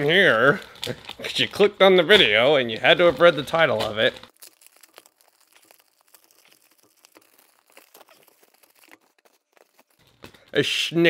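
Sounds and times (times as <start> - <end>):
plastic mailer crinkling: 0.0 - 10.7.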